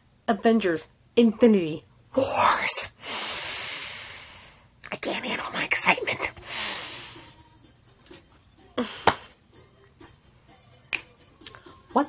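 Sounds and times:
faint television commercial music: 0:05.0 - 0:12.0.

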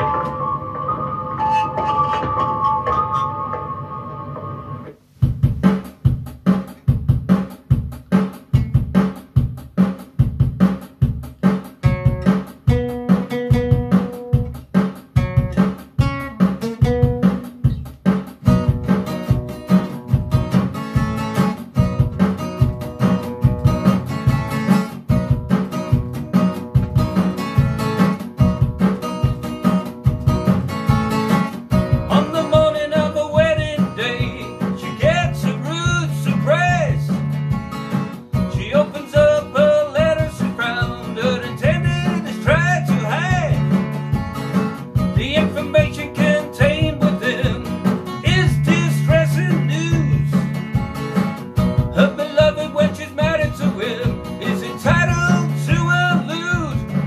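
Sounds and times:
acoustic guitar strumming: 0:00.0 - 0:57.0
person singing: 0:32.1 - 0:37.2, 0:38.5 - 0:43.7, 0:45.2 - 0:50.5, 0:51.9 - 0:57.0.

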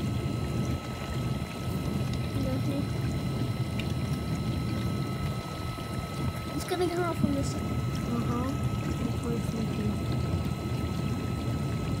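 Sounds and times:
dishwasher low hum: 0:00.0 - 0:12.0
water sloshing in dishwasher: 0:00.6 - 0:12.0.

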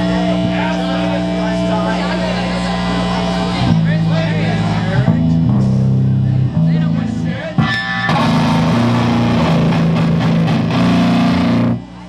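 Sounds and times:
bass guitar: 0:00.0 - 0:12.0
distorted electric guitar: 0:00.0 - 0:12.0
low amplifier hum: 0:00.0 - 0:12.0
drums: 0:03.6 - 0:12.0.

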